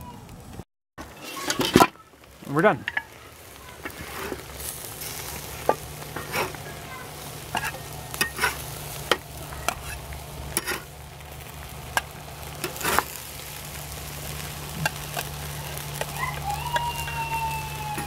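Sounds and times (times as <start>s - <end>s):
faint sizzle: 0.0s - 18.0s
metal spatula scraping grill grate: 1.0s - 2.0s, 2.8s - 17.1s.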